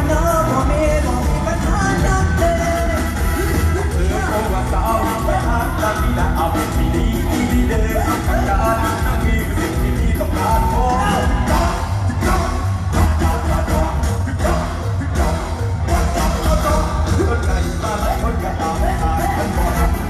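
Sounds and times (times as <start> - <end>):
band with heavy bass: 0.0 - 20.0
person singing lead: 0.0 - 20.0.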